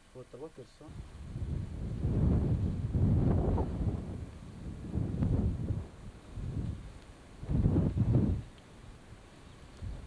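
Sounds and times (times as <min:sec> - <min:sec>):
wind buffeting microphone: 0:00.9 - 0:08.6, 0:09.6 - 0:10.0.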